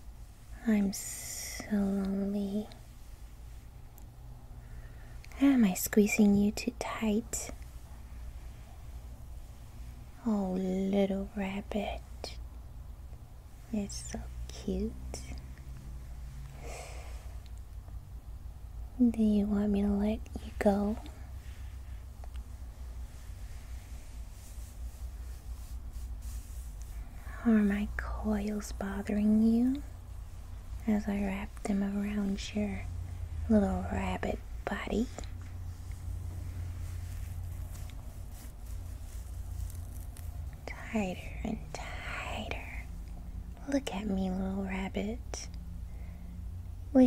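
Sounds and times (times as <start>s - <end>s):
low hum: 0.0s - 47.0s
woman whispering: 0.5s - 2.8s, 5.3s - 7.6s, 10.2s - 12.4s, 13.6s - 15.5s, 19.0s - 21.6s, 27.2s - 30.0s, 30.8s - 35.4s, 40.6s - 43.0s, 43.6s - 45.6s
breathy whisper: 26.6s - 43.0s.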